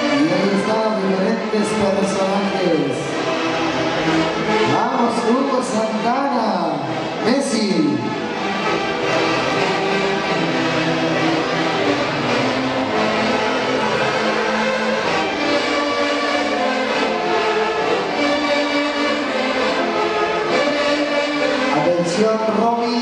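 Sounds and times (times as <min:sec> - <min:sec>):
violins playing melody: 0:00.0 - 0:23.0
wind instruments playing melody: 0:00.0 - 0:23.0.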